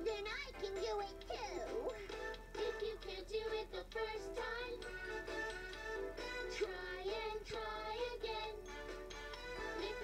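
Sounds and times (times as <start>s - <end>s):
steady musical accompaniment: 0.9s - 10.0s.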